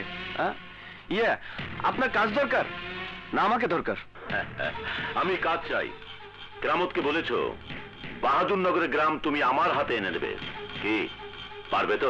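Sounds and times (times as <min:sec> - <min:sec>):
background film music: 0:00.0 - 0:12.0
man talking: 0:05.0 - 0:06.0, 0:06.6 - 0:07.6, 0:08.2 - 0:11.1, 0:11.7 - 0:12.0.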